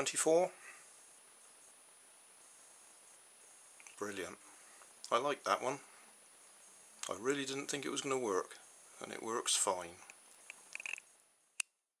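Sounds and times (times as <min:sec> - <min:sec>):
faint small clicks: 0:03.8 - 0:04.0, 0:10.0 - 0:11.7.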